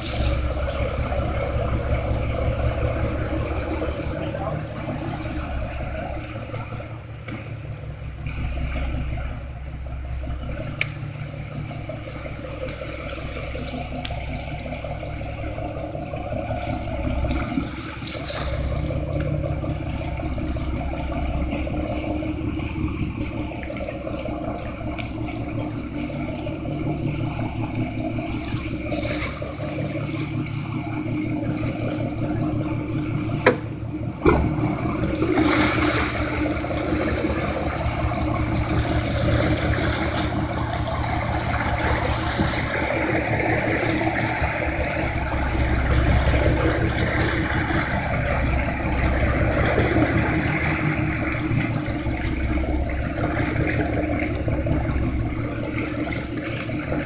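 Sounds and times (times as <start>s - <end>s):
boat engine running: 0.0s - 57.0s
wind and water hiss: 0.0s - 57.0s.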